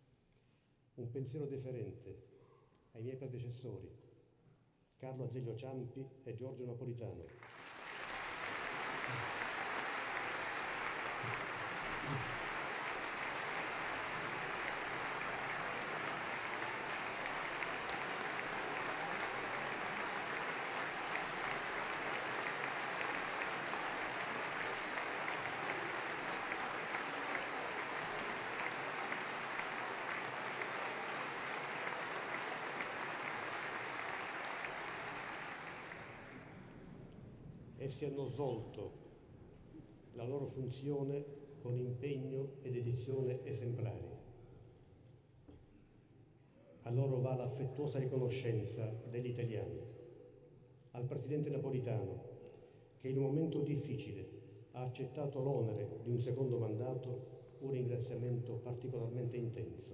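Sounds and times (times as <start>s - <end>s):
large crowd applauding: 7.4s - 37.1s.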